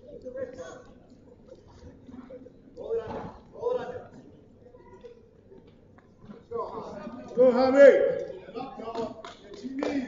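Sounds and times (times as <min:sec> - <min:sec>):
sharp hand claps: 0:08.8 - 0:10.0.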